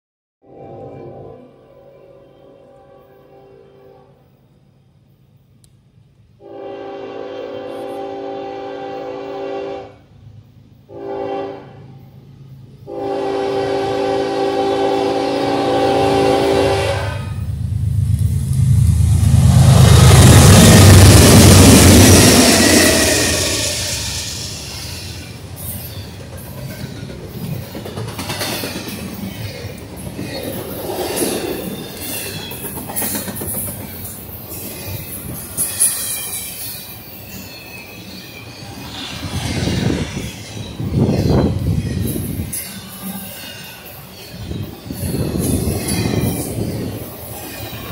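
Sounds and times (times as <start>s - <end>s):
locomotive horn blasts: 2.1s - 4.2s, 6.4s - 10.0s, 10.9s - 11.9s, 12.8s - 17.5s
deep engine rumble: 17.3s - 25.6s
train wheels clicking over rail joints: 17.5s - 47.9s.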